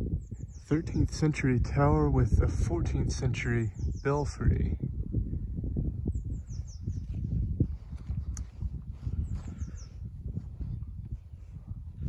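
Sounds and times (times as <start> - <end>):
gusty low rumble: 0.0 - 12.0
songbird singing high falling notes: 5.9 - 7.8.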